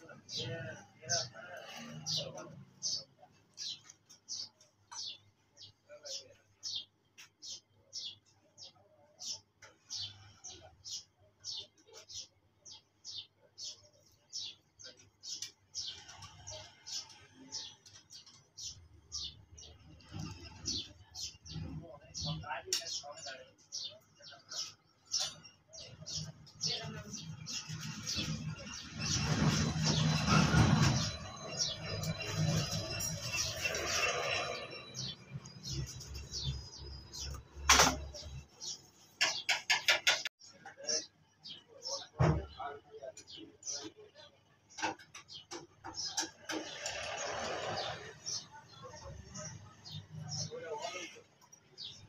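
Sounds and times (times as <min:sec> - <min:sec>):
bird chirping: 0:00.0 - 0:52.0.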